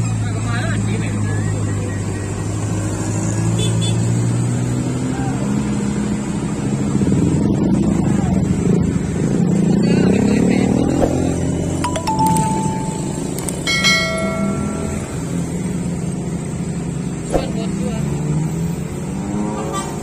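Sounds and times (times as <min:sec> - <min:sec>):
traffic engines droning: 0:00.0 - 0:20.0.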